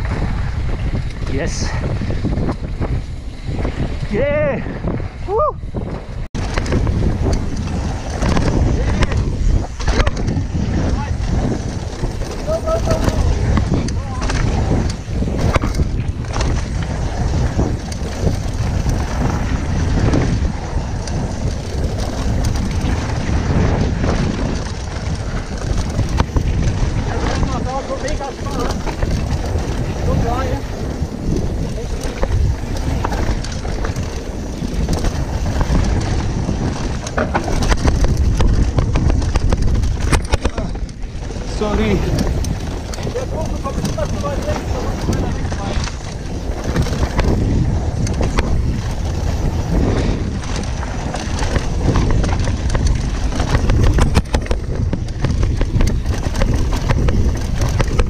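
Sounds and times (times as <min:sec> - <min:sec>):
bike rattling and knocking: 0:00.0 - 0:58.0
bike tyres rolling on gravel: 0:00.0 - 0:58.0
wind buffeting microphone: 0:00.0 - 0:58.0.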